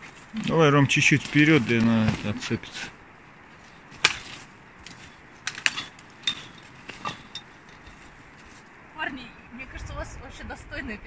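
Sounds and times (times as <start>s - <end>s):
twigs and branches snapping: 3.5s - 8.6s.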